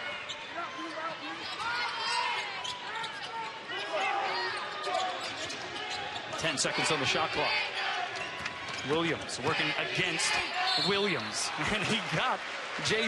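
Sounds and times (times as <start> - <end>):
arena crowd noise: 0.0 - 13.0
sneaker squeaks: 0.1 - 6.5.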